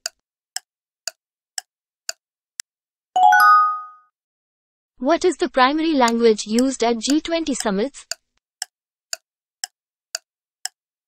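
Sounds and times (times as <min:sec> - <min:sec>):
clock ticking: 0:00.0 - 0:02.2, 0:05.1 - 0:08.2.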